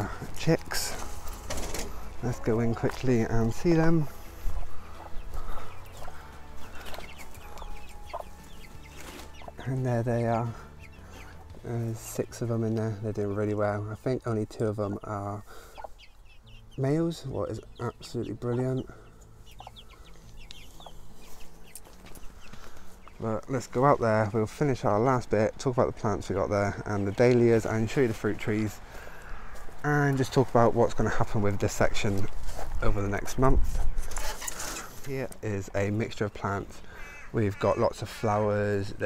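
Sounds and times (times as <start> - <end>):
hen clucking: 0.0 - 31.2, 35.8 - 39.0
chicks peeping: 0.0 - 39.0.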